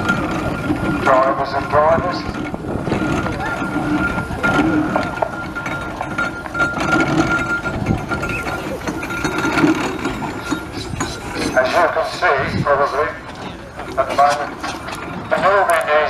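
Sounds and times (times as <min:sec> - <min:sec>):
people talking: 0:00.0 - 0:06.6, 0:07.9 - 0:09.8, 0:11.1 - 0:16.0
metal clanks and knocks: 0:00.0 - 0:16.0
steam roller engine running: 0:00.0 - 0:16.0.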